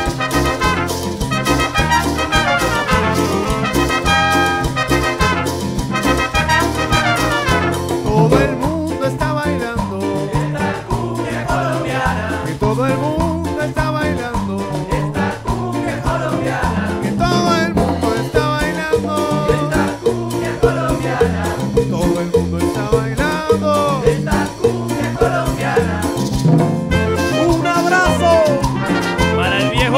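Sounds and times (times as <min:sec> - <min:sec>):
brass lines: 0:00.0 - 0:08.6, 0:26.8 - 0:29.9
cumbia dance orchestra: 0:00.0 - 0:29.9
maracas: 0:00.0 - 0:29.9.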